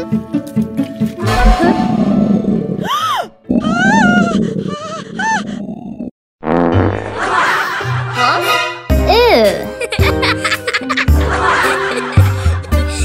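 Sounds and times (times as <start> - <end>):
background music: 0.0 - 3.6, 7.1 - 13.0
grumbling wobbling sound effect: 1.2 - 2.9.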